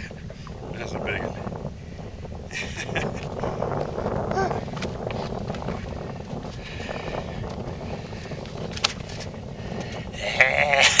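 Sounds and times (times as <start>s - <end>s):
low wind and boat rumble: 0.0s - 11.0s
man making quavering vocal noise: 10.2s - 11.0s.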